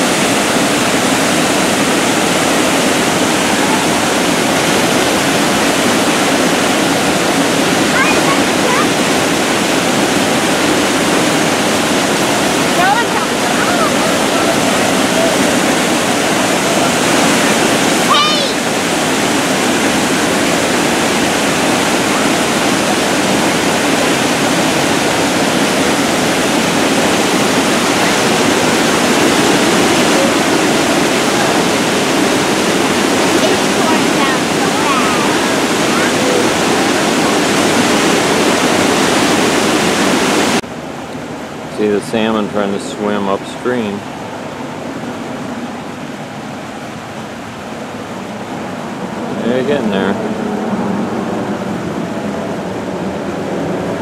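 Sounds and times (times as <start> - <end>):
water rushing over weir: 0.0 - 54.0.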